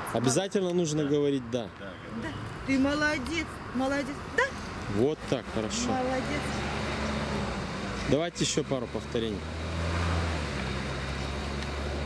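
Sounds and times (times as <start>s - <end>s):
low engine hum: 3.0s - 12.0s.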